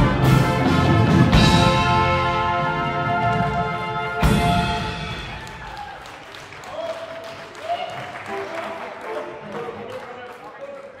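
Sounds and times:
audience applause: 4.9s - 11.0s.

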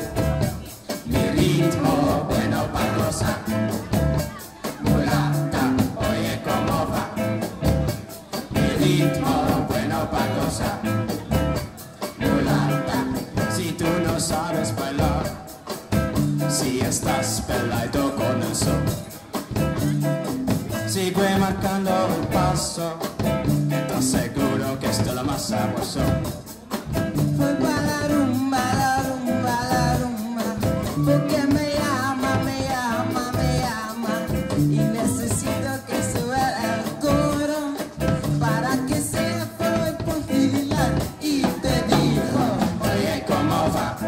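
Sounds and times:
live pop band playing: 0.0s - 44.0s
person singing into microphone: 1.0s - 7.7s, 8.3s - 11.4s, 12.1s - 15.8s, 16.5s - 19.0s, 20.7s - 23.2s, 23.9s - 26.4s, 27.2s - 44.0s.

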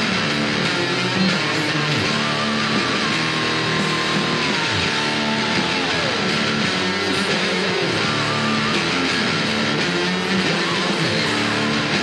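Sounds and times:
distorted electric guitar rock: 0.0s - 12.0s.

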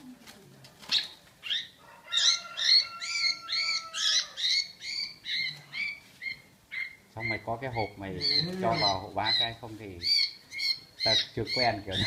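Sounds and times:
bird harsh distress calls: 0.9s - 12.0s.

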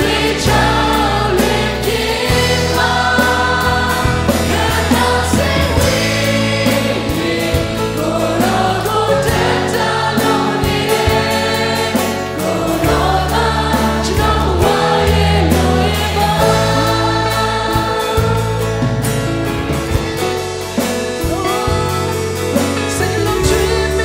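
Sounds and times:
acoustic and electric guitars: 0.0s - 24.0s
backing singers: 0.0s - 24.0s
drum kit beat: 0.0s - 24.0s
man singing lead: 21.2s - 24.0s.

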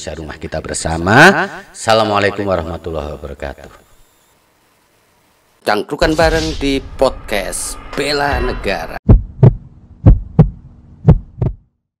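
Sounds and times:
heartbeat double thumps: 9.0s - 11.7s.

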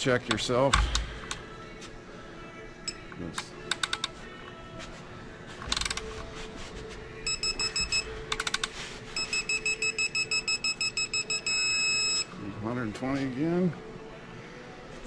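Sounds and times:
high electronic beeps: 7.3s - 8.1s, 9.2s - 12.3s.

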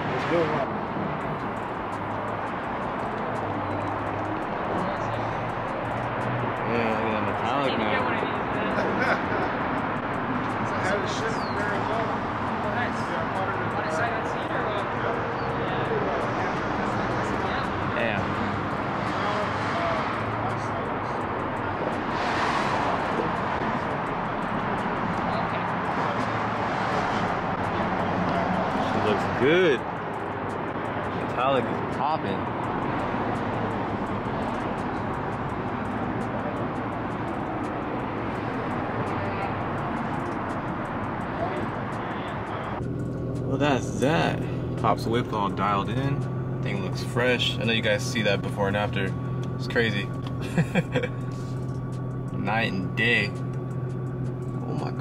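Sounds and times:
indistinct voices: 0.0s - 42.9s
outdoor background noise: 0.0s - 55.0s.

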